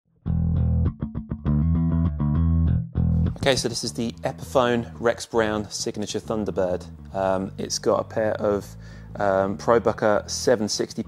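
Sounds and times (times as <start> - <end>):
electric bass guitar riff: 0.1 - 11.0.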